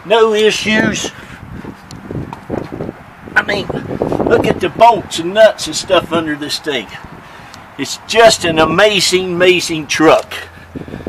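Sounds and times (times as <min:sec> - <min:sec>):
wind rumble on microphone: 0:00.3 - 0:07.7, 0:10.5 - 0:11.0.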